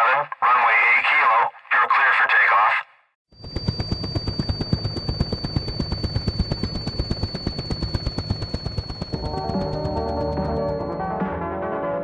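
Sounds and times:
rapid rotor chopping pulses: 0:03.3 - 0:11.1
music: 0:09.1 - 0:12.0.

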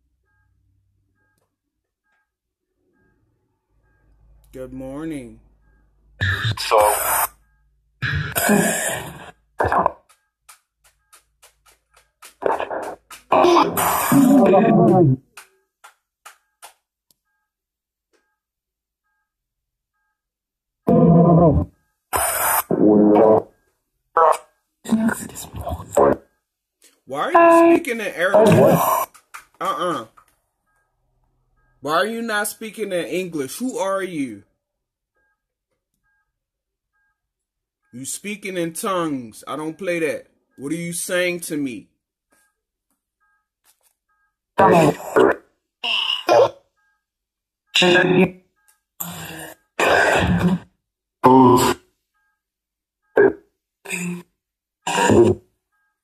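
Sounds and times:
garbled voice fragments from speaker: 0:06.2 - 0:07.3, 0:08.0 - 0:10.0, 0:12.4 - 0:15.2, 0:24.2 - 0:26.2, 0:27.0 - 0:30.2, 0:44.6 - 0:46.6, 0:47.8 - 0:48.3, 0:53.2 - 0:54.3.

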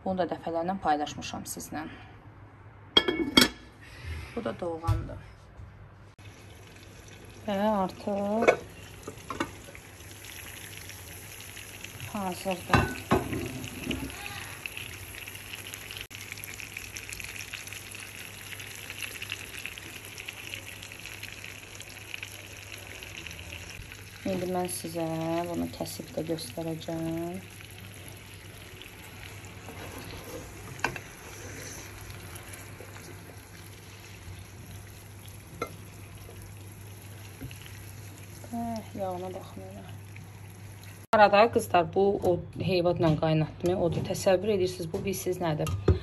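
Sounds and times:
cookware clinking: 0:03.0 - 0:03.7, 0:08.4 - 0:09.6, 0:12.7 - 0:14.1.

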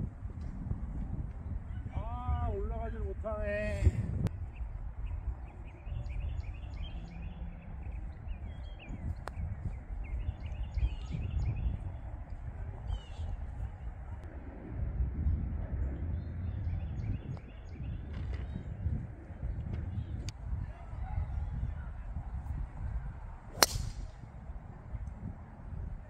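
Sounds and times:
wind buffeting microphone: 0:00.0 - 0:26.0
small birds chirping: 0:04.3 - 0:11.9.

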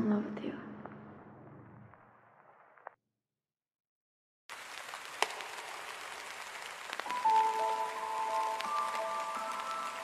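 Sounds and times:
crackles: 0:00.7 - 0:03.0, 0:04.5 - 0:10.0
rain hissing: 0:04.5 - 0:10.0.

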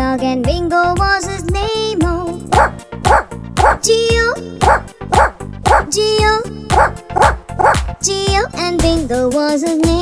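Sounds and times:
children's sing-along music: 0:00.0 - 0:10.0
cartoon dog barks: 0:02.5 - 0:03.9, 0:04.6 - 0:06.0, 0:06.7 - 0:07.9.

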